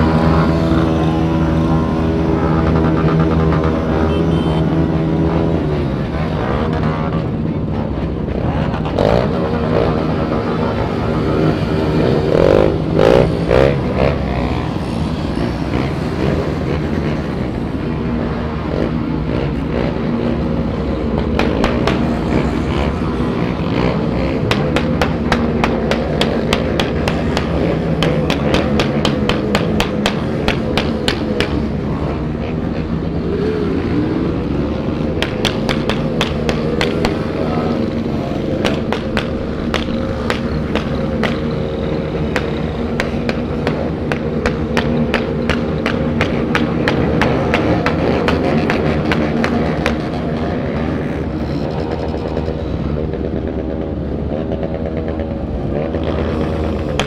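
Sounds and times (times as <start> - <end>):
motorcycle engines running slowly: 0.0 - 57.0.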